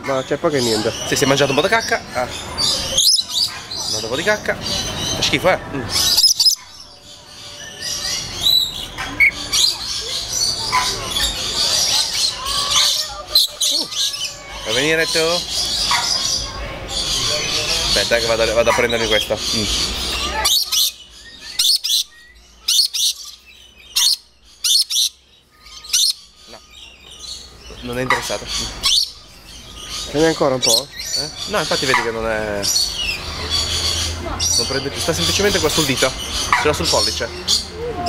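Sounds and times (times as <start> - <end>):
lorikeets chirping and squeaking: 0.0 - 38.0.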